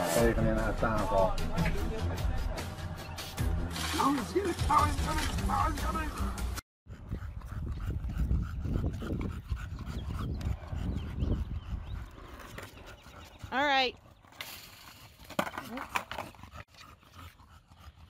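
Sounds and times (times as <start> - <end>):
dog panting: 6.9 - 14.3, 15.4 - 18.0
skateboard wheels rolling on asphalt: 12.0 - 13.3, 14.9 - 16.4.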